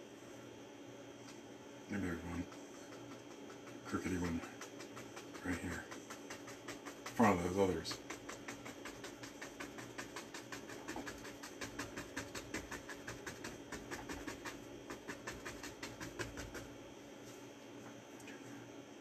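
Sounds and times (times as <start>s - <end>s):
bristle brush dabbing on canvas: 2.0s - 16.7s.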